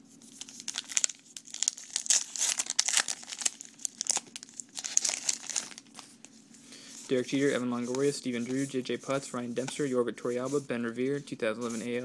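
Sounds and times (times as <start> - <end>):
card pack wrapper tearing and crinkling: 0.4 - 6.1.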